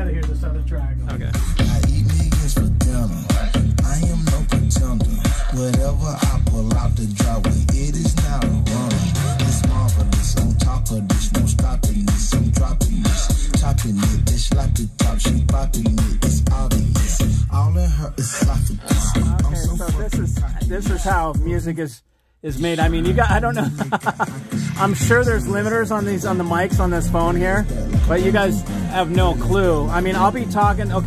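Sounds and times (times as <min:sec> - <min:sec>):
music with deep bass beat: 0:00.0 - 0:21.8, 0:22.5 - 0:31.0.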